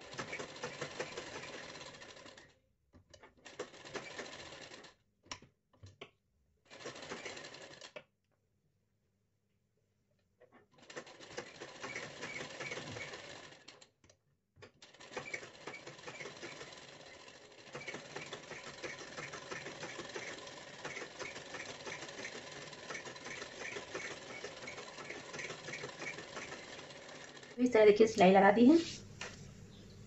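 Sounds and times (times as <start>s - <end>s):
sewing machine stitching: 0.0s - 5.0s, 6.7s - 8.0s, 10.7s - 13.9s, 14.6s - 29.4s.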